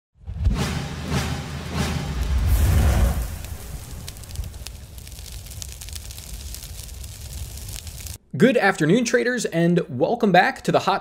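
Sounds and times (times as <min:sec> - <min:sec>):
rushing whoosh: 0:01.8 - 0:05.6
faintly crackling hiss: 0:02.2 - 0:08.2.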